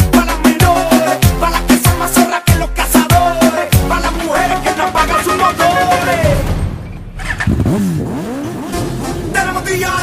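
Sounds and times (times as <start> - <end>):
motorcycle engine revving: 4.7 - 10.0.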